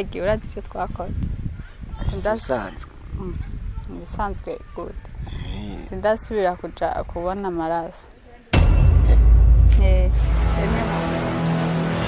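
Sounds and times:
steady low rumble: 0:08.6 - 0:11.1.

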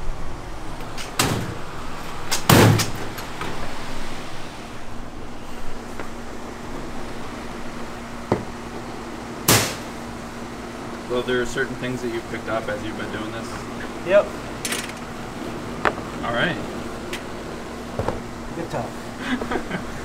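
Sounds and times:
steady machine hum: 0:00.0 - 0:20.0.

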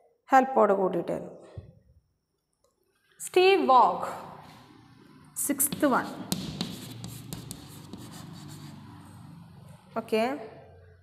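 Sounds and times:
chalk scratching on chalkboard: 0:05.6 - 0:09.3.

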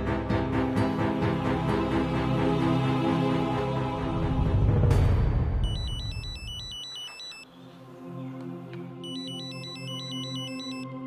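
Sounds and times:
background music: 0:00.0 - 0:11.0
mobile phone ringtone trill: 0:05.6 - 0:07.4, 0:09.0 - 0:10.9.

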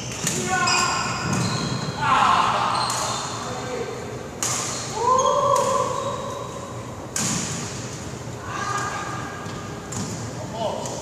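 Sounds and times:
shoes squeaking on wooden floor: 0:00.0 - 0:01.9
racket hitting shuttlecock: 0:04.4 - 0:06.0, 0:07.1 - 0:07.9.

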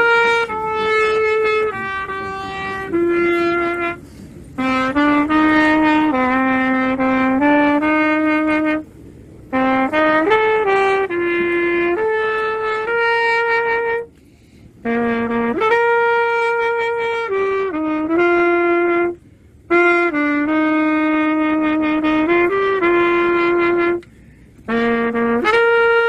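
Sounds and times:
solo trumpet melody: 0:00.0 - 0:26.0.

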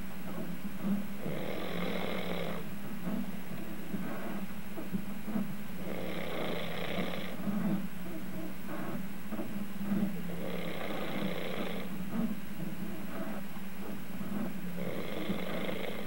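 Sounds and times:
man snoring: 0:01.2 - 0:02.6, 0:05.8 - 0:07.4, 0:10.3 - 0:11.9, 0:14.8 - 0:16.0.

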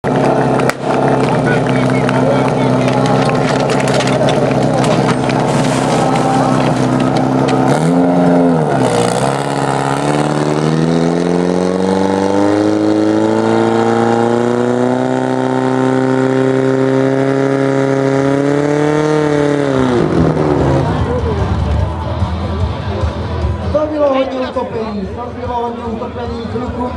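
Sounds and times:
sharp crack: 0:00.2 - 0:08.0.

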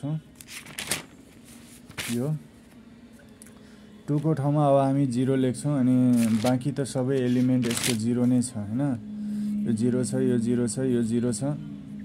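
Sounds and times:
paper page turning: 0:00.4 - 0:02.3, 0:06.1 - 0:06.6, 0:07.2 - 0:08.1.

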